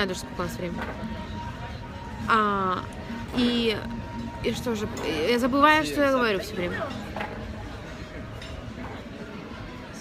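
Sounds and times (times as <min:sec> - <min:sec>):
faint voices: 0:00.0 - 0:10.0.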